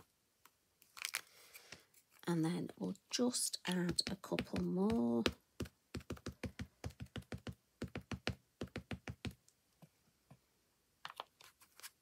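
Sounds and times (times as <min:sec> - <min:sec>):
ink pad tapping on stamp: 0:03.7 - 0:09.4.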